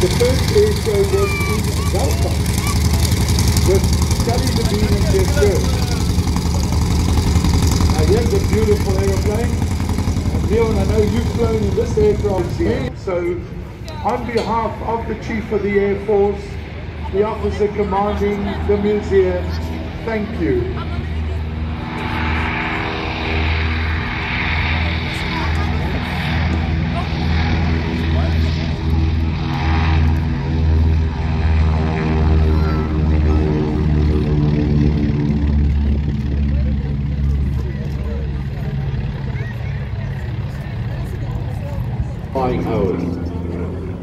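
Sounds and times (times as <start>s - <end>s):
radial aircraft engines at takeoff: 0.0s - 44.0s.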